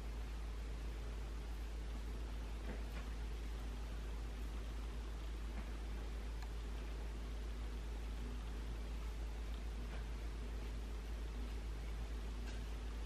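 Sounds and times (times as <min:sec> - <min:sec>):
room noise hum and hiss: 0:00.0 - 0:13.0.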